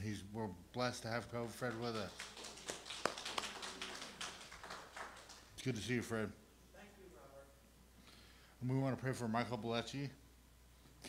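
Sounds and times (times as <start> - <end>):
group hand clapping: 1.3 - 5.6.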